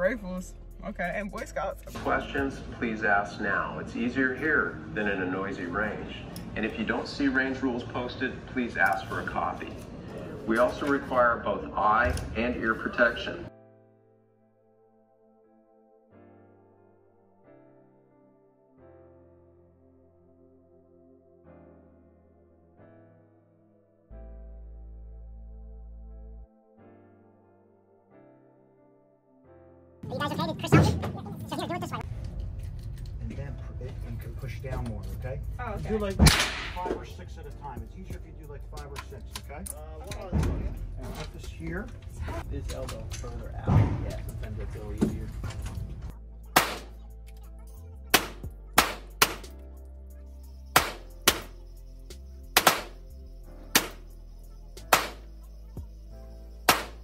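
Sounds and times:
handgun shots echoing: 36.2 - 36.8, 46.5 - 47.0, 48.1 - 49.6, 50.8 - 51.5, 52.6 - 53.0, 53.8 - 54.0, 54.9 - 55.3, 56.7 - 57.0.

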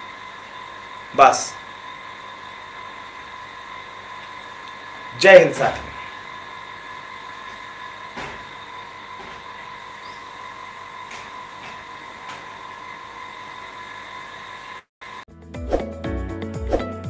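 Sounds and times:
room noise: 0.0 - 14.8
thin high whine: 0.0 - 15.2.

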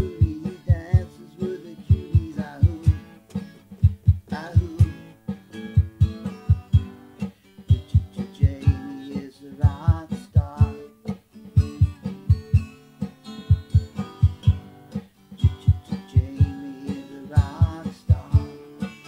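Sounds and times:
acoustic rock song: 0.0 - 19.0.

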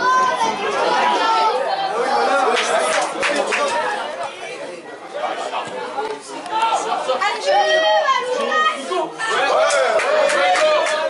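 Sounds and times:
voices calling out and chattering: 0.0 - 11.0.

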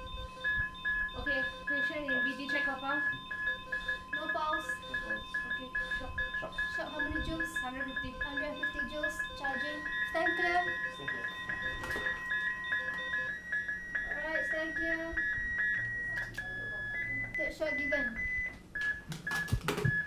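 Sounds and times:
higher steady alarm tone: 0.0 - 20.0
rapid repeated beep: 0.0 - 20.0
steady alarm tone: 0.0 - 20.0.

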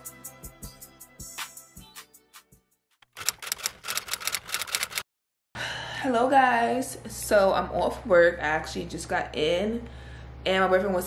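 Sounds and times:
rapid keyboard typing: 3.0 - 5.0.

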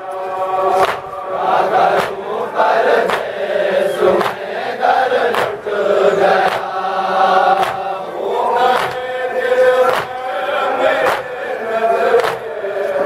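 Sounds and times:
men chanting a lament: 0.0 - 13.0
rhythmic chest-beating slaps: 0.0 - 13.0.

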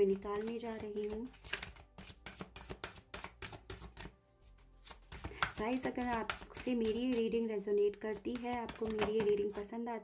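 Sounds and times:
cards being shuffled: 0.0 - 9.6.

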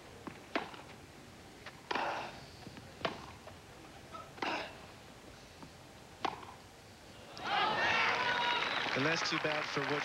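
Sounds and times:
tennis racket hitting ball: 0.2 - 1.0, 3.0 - 3.4, 6.2 - 6.6
crowd cheering and applauding: 7.4 - 10.0.

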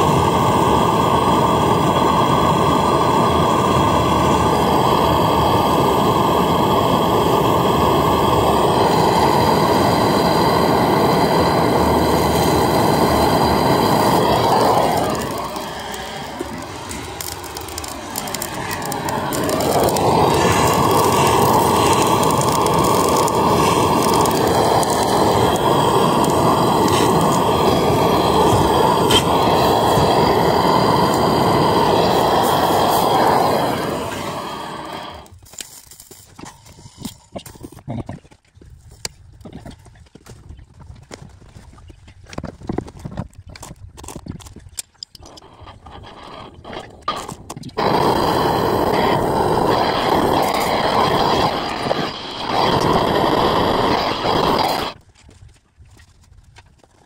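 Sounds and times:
gas torch burning: 0.0 - 37.8, 45.0 - 55.0.

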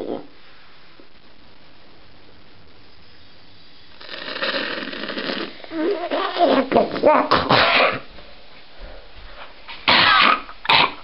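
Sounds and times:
boy coughing loudly: 6.4 - 8.1, 9.9 - 11.0.

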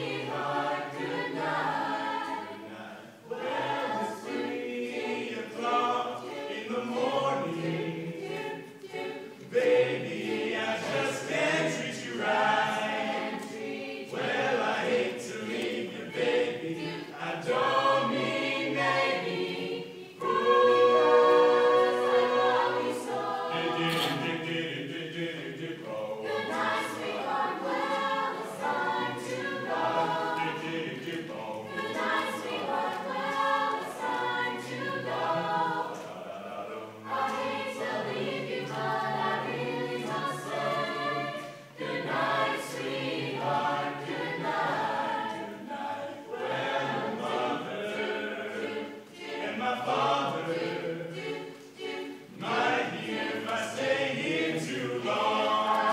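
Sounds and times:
a cappella chorus singing: 0.0 - 55.9.

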